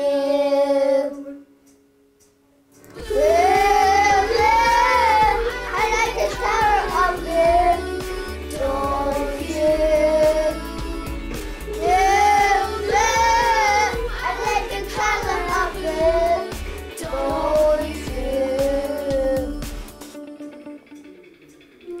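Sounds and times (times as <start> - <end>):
young children singing: 0.0 - 1.5, 2.9 - 20.4
backing music: 1.5 - 22.0.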